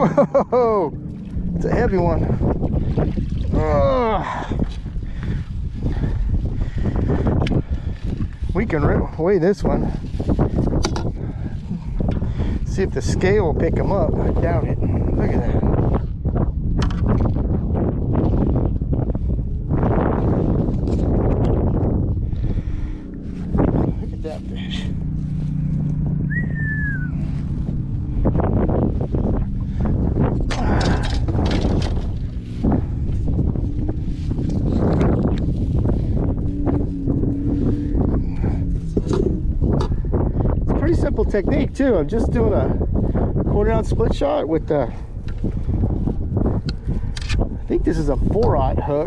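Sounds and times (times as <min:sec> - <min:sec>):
wind on microphone: 0:00.0 - 0:49.0
short falling whistle: 0:26.3 - 0:27.2
knocks and rustles of fish handling: 0:30.4 - 0:32.4.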